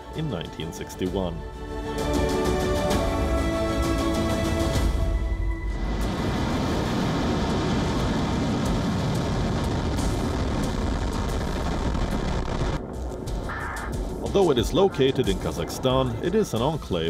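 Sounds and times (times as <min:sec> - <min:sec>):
rocket engine roar: 0:05.8 - 0:17.0.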